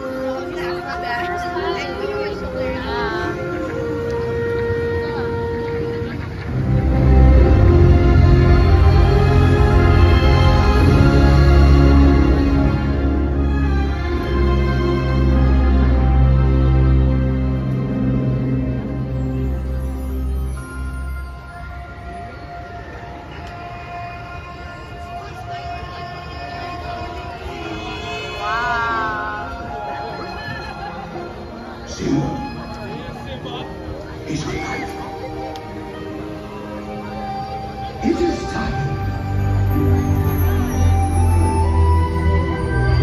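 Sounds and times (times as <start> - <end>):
music over outdoor loudspeakers: 0.0 - 43.0.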